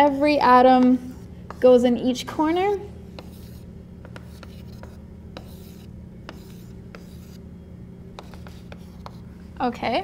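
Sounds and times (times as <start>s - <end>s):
steady low hum: 0.0s - 10.0s
chalk scratching on chalkboard: 2.4s - 7.4s, 8.2s - 9.5s
chalk tapping on board: 3.1s - 7.4s, 8.2s - 9.3s.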